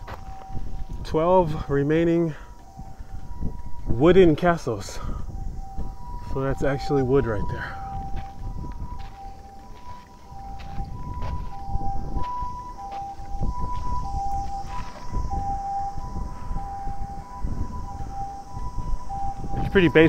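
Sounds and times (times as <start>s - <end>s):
ambulance two-tone siren: 0.0s - 20.0s.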